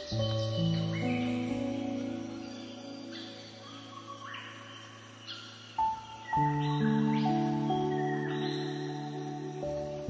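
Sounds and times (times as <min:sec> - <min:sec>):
soft worship piano music: 0:00.0 - 0:10.0.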